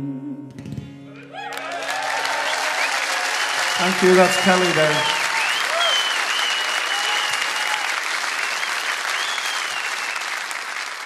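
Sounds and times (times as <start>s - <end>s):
cheers: 1.2s - 11.0s
audience applauding: 1.3s - 11.0s.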